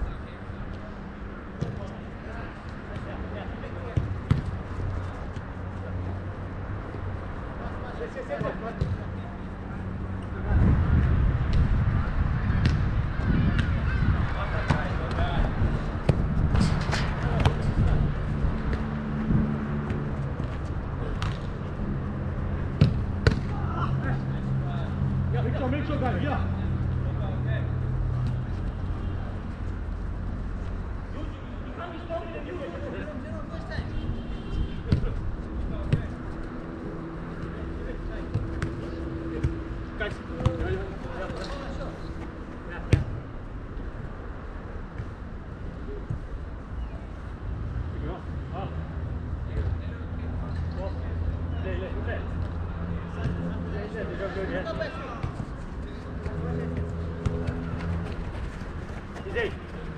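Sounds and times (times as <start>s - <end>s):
soccer ball being kicked: 3.9s - 5.6s, 8.4s - 9.2s, 12.5s - 18.0s, 18.6s - 21.6s, 22.7s - 23.6s, 34.8s - 35.2s, 35.8s - 36.2s, 38.1s - 42.2s, 42.9s - 43.2s, 55.1s - 59.8s
distant players shouting: 23.4s - 24.3s, 54.1s - 59.9s.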